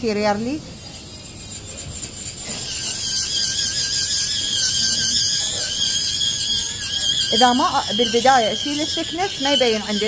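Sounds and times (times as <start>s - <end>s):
dental micromotor whining: 0.8s - 10.0s.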